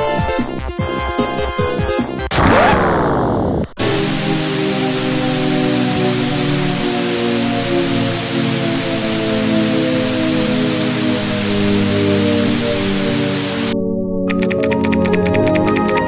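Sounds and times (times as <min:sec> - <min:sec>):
falling shepard tone: 0:02.3 - 0:13.8
loud static hiss: 0:02.3 - 0:13.8.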